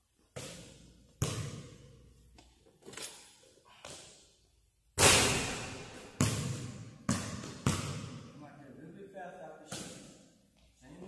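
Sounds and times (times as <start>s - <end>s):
basketball bouncing on wooden floor: 0.3s - 2.0s, 5.9s - 8.3s
basketball hitting hoop: 0.4s - 1.8s, 5.0s - 8.2s.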